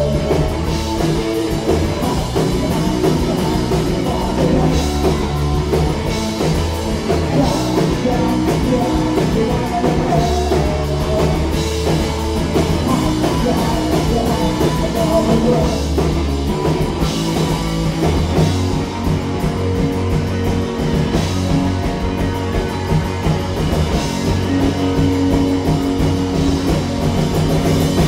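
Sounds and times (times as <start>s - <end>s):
person singing: 0.0s - 5.5s, 7.1s - 16.3s
punk rock band playing live: 0.0s - 28.0s.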